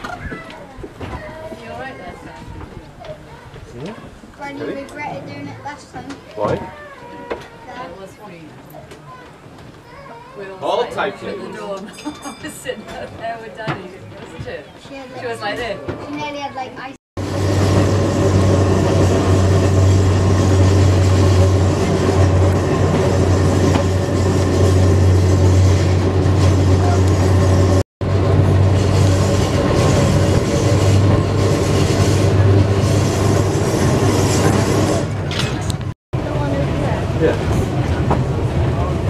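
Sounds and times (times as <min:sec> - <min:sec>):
electric tram running on rails: 0:17.2 - 0:39.0.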